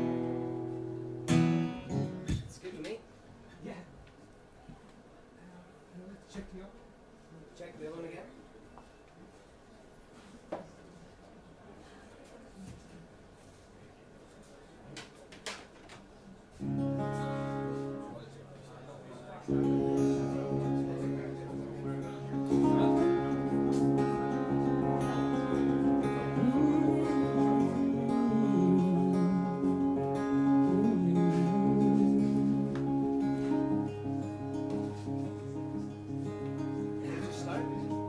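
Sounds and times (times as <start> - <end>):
acoustic guitar playing: 0.0 - 2.4, 16.6 - 18.6, 19.4 - 38.0.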